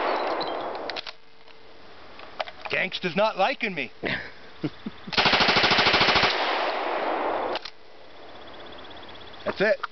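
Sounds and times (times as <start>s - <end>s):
submachine gun burst: 5.2s - 6.9s
gunshot echoes: 5.2s - 7.6s.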